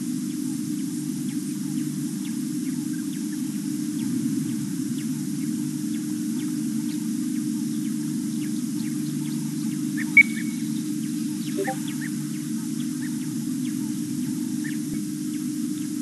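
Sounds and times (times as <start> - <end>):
faint bird chirps: 11.5 - 12.0
sharp bird call: 11.6 - 11.9.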